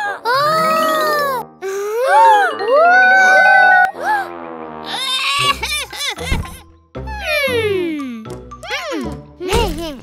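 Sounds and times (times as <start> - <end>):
cartoon music: 0.3 - 6.1
twinkling magic sound effects: 2.2 - 3.8.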